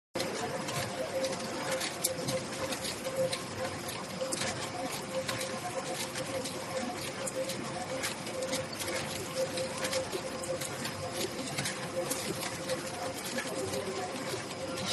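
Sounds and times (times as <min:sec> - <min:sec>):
coil winding machine steady tone: 0:00.2 - 0:14.9.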